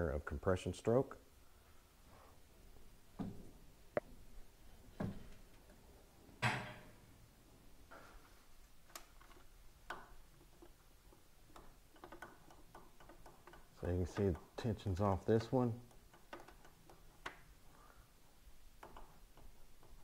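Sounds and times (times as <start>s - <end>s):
metallic clicks and taps: 8.8s - 17.5s, 18.7s - 20.0s.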